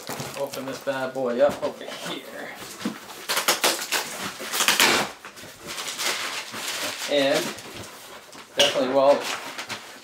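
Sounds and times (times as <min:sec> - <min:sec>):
cardboard ripping: 0:00.0 - 0:01.0, 0:02.7 - 0:07.8
cardboard crackles and clicks: 0:00.0 - 0:01.8
packaging rustling: 0:00.0 - 0:10.0.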